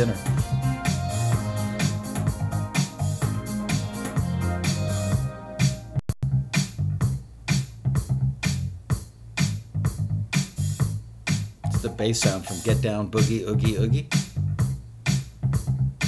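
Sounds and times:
electronic dance music: 0.0s - 6.0s, 10.4s - 15.7s.

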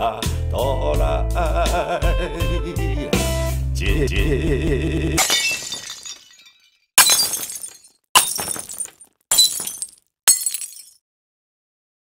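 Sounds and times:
glass breaking: 5.2s - 11.0s.

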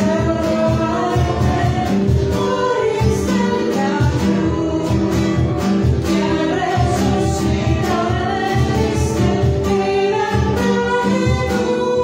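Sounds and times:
instrumental accompaniment: 0.0s - 12.0s
voices singing together: 0.0s - 12.0s.

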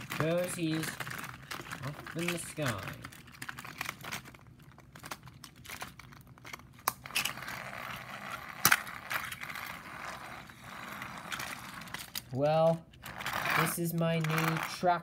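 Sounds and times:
plastic toy train clicks and knocks: 0.0s - 4.3s, 13.6s - 14.8s.

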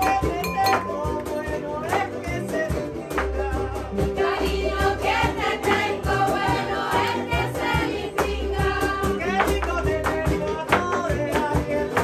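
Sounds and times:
small guitars strummed: 0.0s - 12.0s
group singing: 0.2s - 9.6s.

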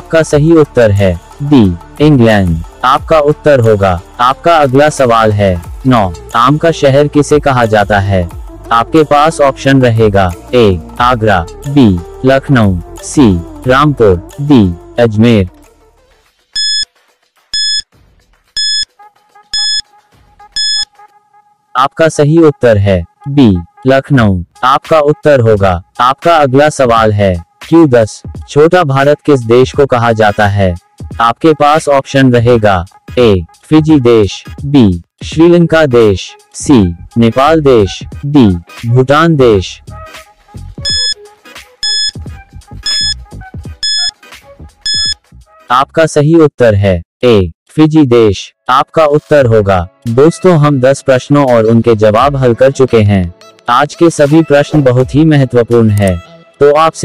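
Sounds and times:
background music with low beat: 0.0s - 15.9s, 17.5s - 18.8s, 19.6s - 20.9s, 24.6s - 31.5s, 32.5s - 45.6s
short high electronic beeps: 16.6s - 16.8s, 17.6s - 17.8s, 18.6s - 18.9s, 19.6s - 19.8s, 20.6s - 20.9s, 40.8s - 41.2s, 41.8s - 42.2s, 42.8s - 43.2s, 43.8s - 44.2s, 44.8s - 45.2s.

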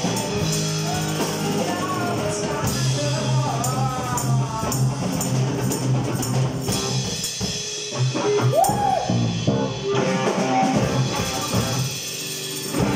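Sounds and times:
rock band jamming: 0.0s - 12.9s.

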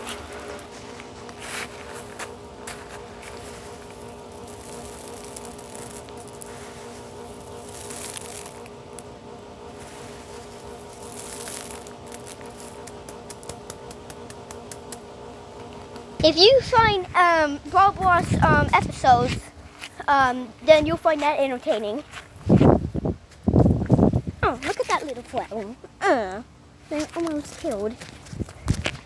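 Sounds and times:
steady multi-tone hum: 0.0s - 29.0s
stones clicking and scraping: 1.6s - 9.1s, 10.2s - 15.0s.

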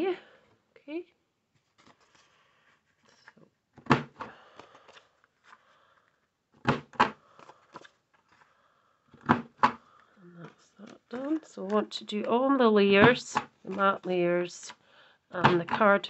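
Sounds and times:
card stock rustling: 1.6s - 3.4s, 4.0s - 6.1s, 6.7s - 8.6s, 9.2s - 12.0s, 13.0s - 14.1s.

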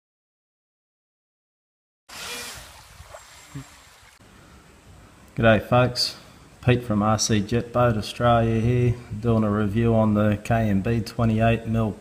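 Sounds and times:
river water rushing: 2.1s - 4.2s.

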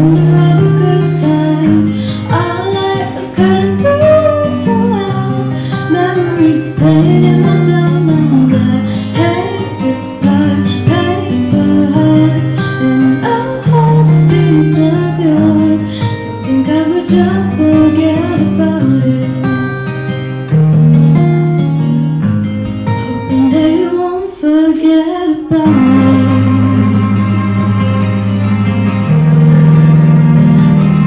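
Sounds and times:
woman singing into a microphone: 0.0s - 20.3s, 23.0s - 27.2s
guitar accompaniment: 0.0s - 31.0s
sustained low bass notes: 25.6s - 31.0s.

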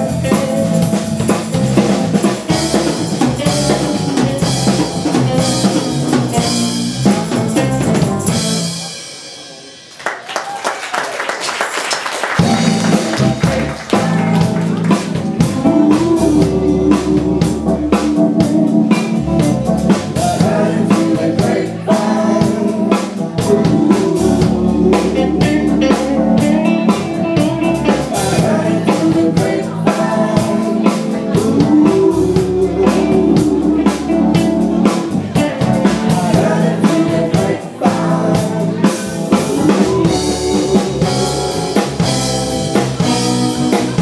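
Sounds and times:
electric guitar: 0.0s - 9.4s, 12.3s - 44.0s
drum kit beat: 0.0s - 44.0s
person singing: 12.4s - 44.0s.

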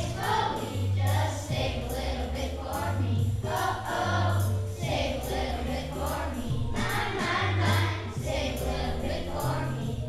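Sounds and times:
children's choir singing: 0.0s - 10.0s
instrumental accompaniment low notes: 0.0s - 10.0s.

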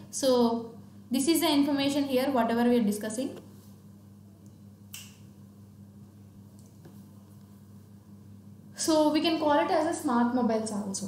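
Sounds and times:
sharp click: 4.9s - 5.2s.

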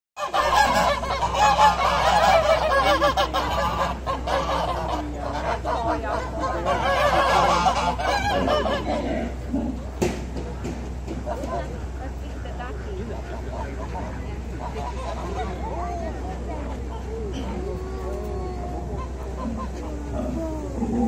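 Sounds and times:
geese honking: 0.2s - 21.0s.

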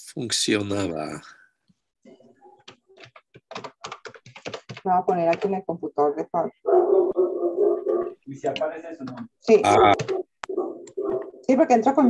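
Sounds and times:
computer keyboard typing: 2.6s - 5.7s, 7.9s - 11.6s
man's voice: 8.4s - 10.0s.

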